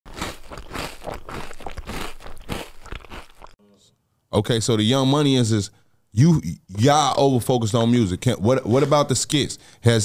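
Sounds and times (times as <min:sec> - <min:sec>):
crackly crunching: 0:00.1 - 0:03.6.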